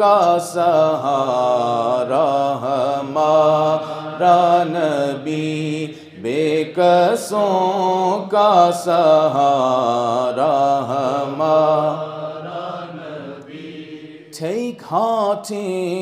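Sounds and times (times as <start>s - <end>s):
man chanting into a microphone: 0.0s - 12.0s, 14.3s - 16.0s.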